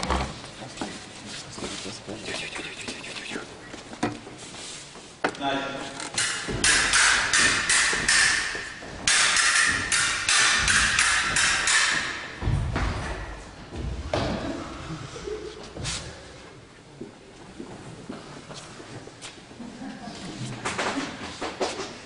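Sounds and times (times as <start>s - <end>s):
footwork on wooden floor: 6.0s - 14.6s
low thud: 12.4s - 14.6s.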